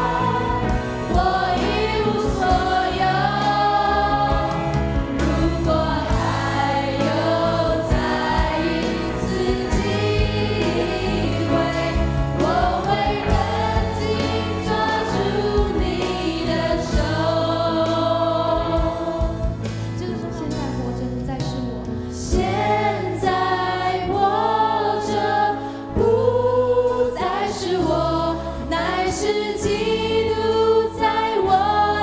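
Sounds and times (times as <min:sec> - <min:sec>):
women singing together: 0:00.0 - 0:19.6, 0:22.2 - 0:32.0
steady drum beat: 0:00.0 - 0:21.4
keyboard: 0:00.0 - 0:32.0.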